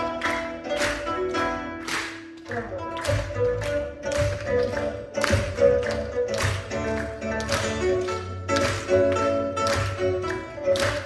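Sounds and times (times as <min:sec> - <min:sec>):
pipa plucked accents: 0:00.0 - 0:11.0
traditional instrument ensemble: 0:00.0 - 0:11.0.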